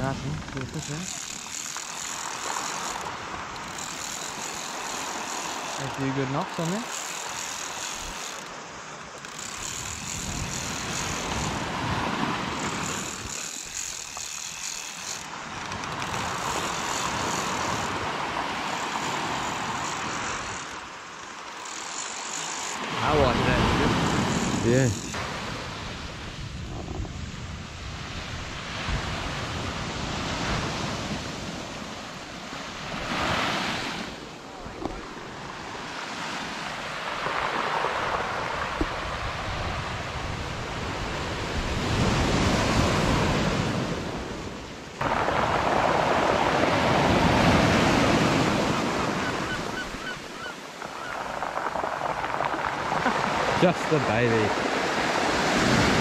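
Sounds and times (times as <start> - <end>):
surf breaking on a beach: 0.0 - 21.4, 22.2 - 56.0.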